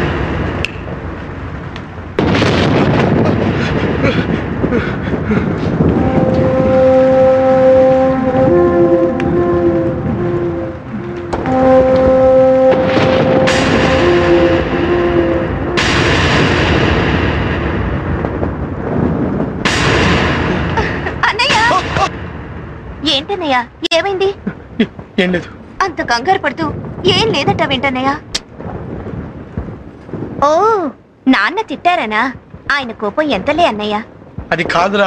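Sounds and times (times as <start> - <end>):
thunderclaps: 0.0 - 35.0
wind rushing: 0.0 - 35.0
eerie held music notes: 3.6 - 19.0.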